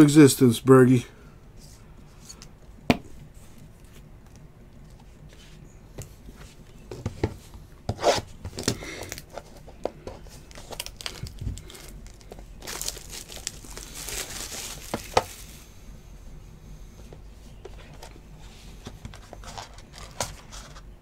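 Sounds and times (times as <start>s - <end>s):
wrapper crinkling and tearing: 10.4s - 15.5s.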